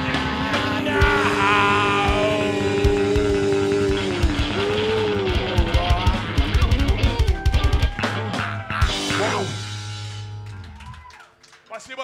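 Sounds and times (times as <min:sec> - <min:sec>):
singing: 0:00.0 - 0:06.3
electric guitars: 0:00.0 - 0:11.1
drums: 0:00.0 - 0:11.3.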